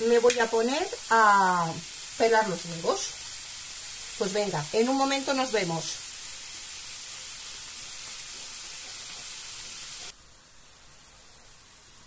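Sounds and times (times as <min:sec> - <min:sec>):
vegetables sizzling in a frying pan: 0:00.0 - 0:12.0.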